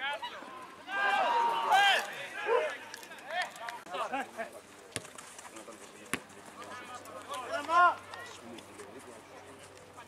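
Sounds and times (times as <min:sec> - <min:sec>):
players shouting: 0:00.0 - 0:03.5.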